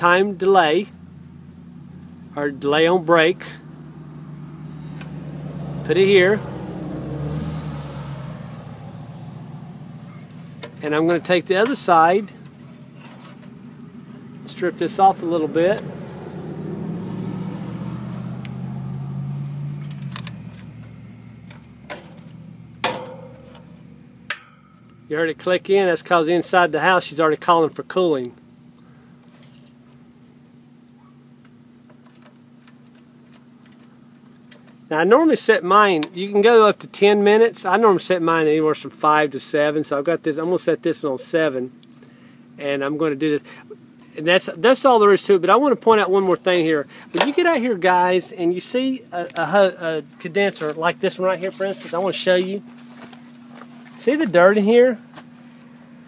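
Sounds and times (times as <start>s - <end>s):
engine humming: 0.0s - 56.0s.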